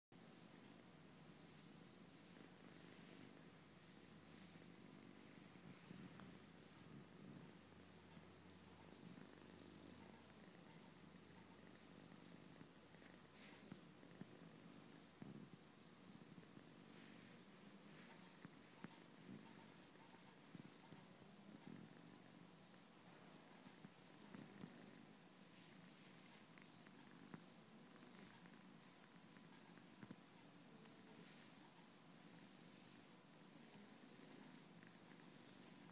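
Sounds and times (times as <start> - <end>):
cat purring: 0.1 - 35.9.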